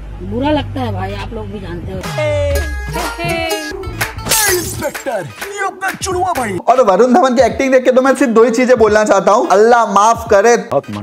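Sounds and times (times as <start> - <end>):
trailer music: 2.0 - 6.6.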